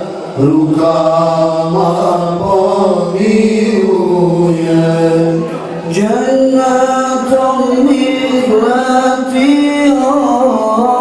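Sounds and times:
men chanting into microphones: 0.0s - 11.0s.

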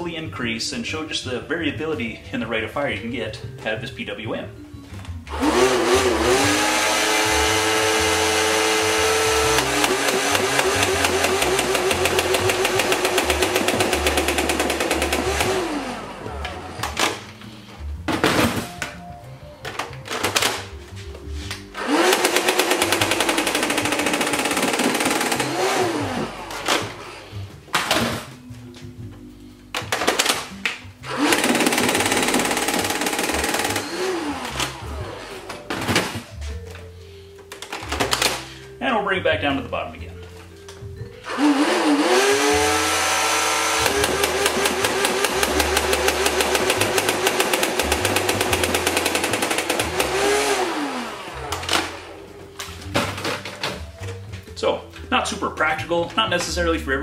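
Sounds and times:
flywheel motors whining: 5.3s - 17.4s, 21.8s - 27.3s, 31.0s - 35.8s, 41.2s - 52.2s
rapid ticking of toy blaster shots: 9.4s - 15.6s, 21.8s - 25.8s, 31.2s - 34.0s, 43.5s - 50.6s.

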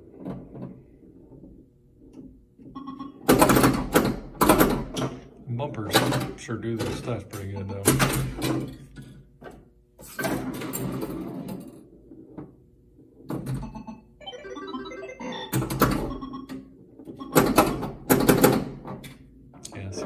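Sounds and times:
pinball solenoid thunks: 3.2s - 5.2s, 5.9s - 8.8s, 17.2s - 19.0s
pinball electronic sound effects: 13.5s - 18.0s.

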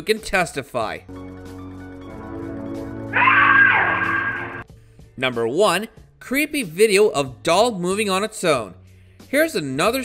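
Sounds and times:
shrill scream: 3.1s - 4.6s
horror music drone: 3.2s - 4.6s.

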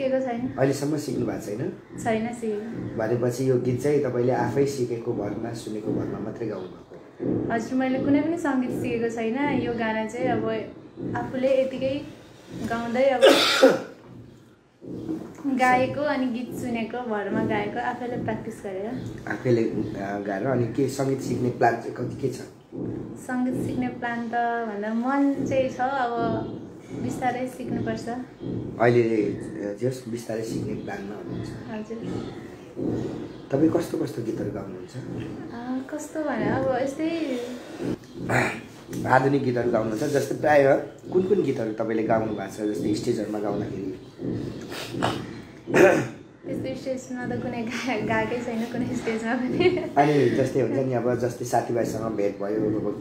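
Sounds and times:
person clearing throat: 13.2s - 14.0s, 38.3s - 38.7s, 45.0s - 46.2s.

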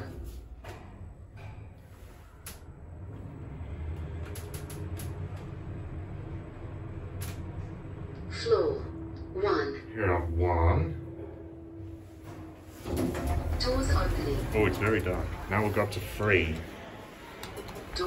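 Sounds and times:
lift car rumble and hum: 0.0s - 18.0s.

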